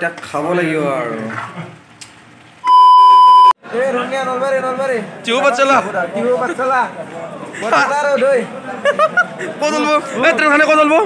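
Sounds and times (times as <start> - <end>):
high-pitched test tone beep: 2.6 - 3.6.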